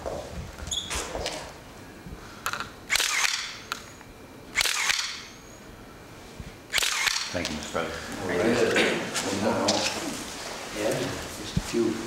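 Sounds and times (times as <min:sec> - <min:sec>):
camera shutters clicking: 0:02.9 - 0:03.9, 0:04.6 - 0:05.3, 0:06.7 - 0:07.4.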